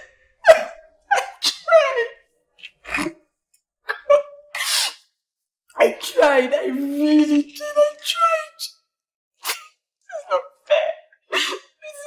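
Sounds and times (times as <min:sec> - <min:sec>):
woman sobbing: 0:09.4 - 0:12.0.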